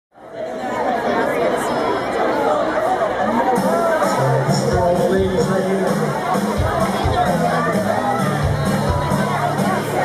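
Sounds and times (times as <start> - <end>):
crowd chattering: 0.1 - 10.0.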